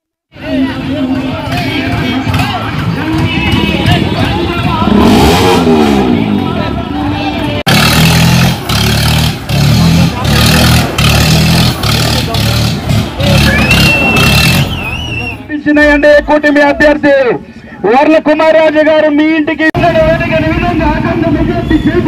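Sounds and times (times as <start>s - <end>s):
crowd noise: 0.3s - 22.0s
tractor engine revving: 1.9s - 6.7s, 7.6s - 15.2s.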